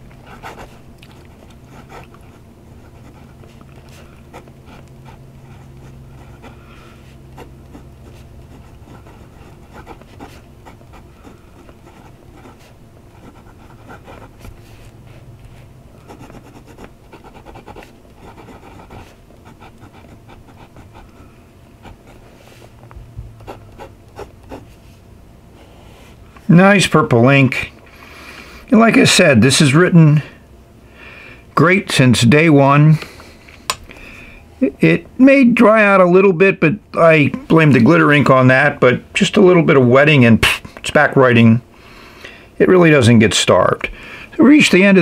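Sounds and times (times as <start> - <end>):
steady low hum: 0.0 - 45.0
fountain pen scratching on paper: 0.2 - 0.8, 1.4 - 14.9, 16.0 - 21.1, 21.8 - 22.6, 23.4 - 24.8.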